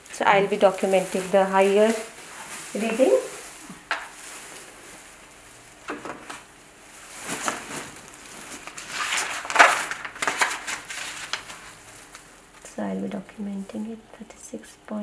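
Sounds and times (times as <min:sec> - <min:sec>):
paper rustling: 0:00.3 - 0:12.7.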